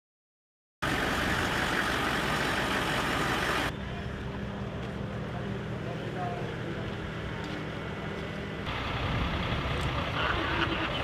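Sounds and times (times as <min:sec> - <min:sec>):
vehicle engine hum: 0:00.8 - 0:11.0.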